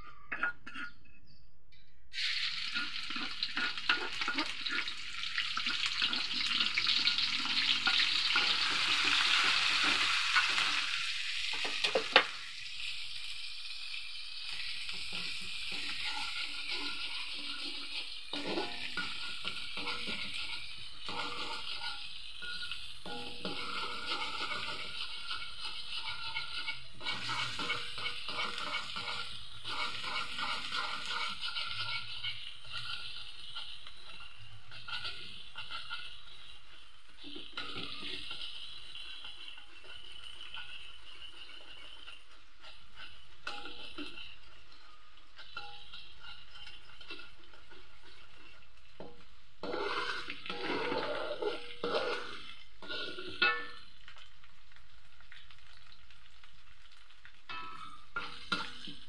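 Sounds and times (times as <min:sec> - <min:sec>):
aromatics sizzling in hot oil: 0:02.1 - 0:59.0
ladle scraping wok: 0:02.2 - 0:13.8, 0:14.4 - 0:54.1, 0:57.5 - 0:59.0.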